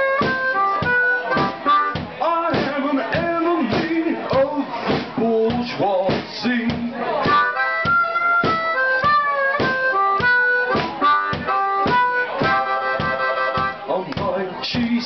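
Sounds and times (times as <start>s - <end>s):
amplified harmonica: 0.0s - 2.1s, 7.2s - 13.9s
drum beat: 0.0s - 15.0s.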